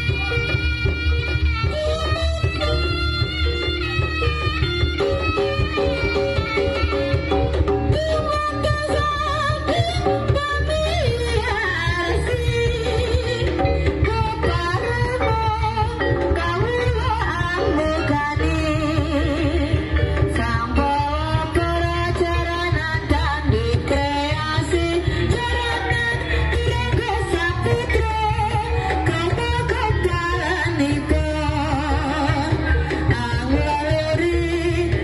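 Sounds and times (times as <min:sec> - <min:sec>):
barrel drum pulsing beat: 0:00.0 - 0:35.0.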